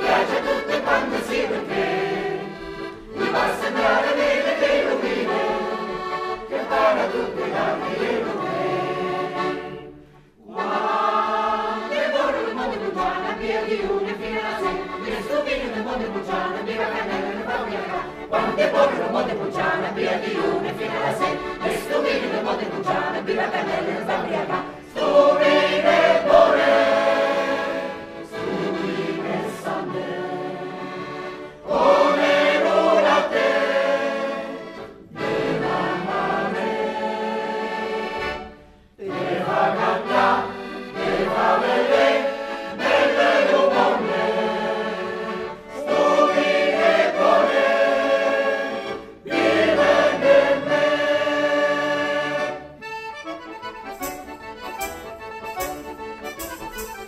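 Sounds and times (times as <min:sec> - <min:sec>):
mixed choir singing folk song: 0:00.0 - 0:55.2
accordion: 0:00.0 - 0:57.0.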